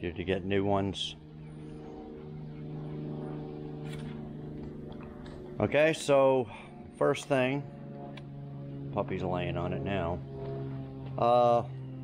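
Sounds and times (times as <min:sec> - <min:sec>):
engine droning: 0:00.0 - 0:12.0.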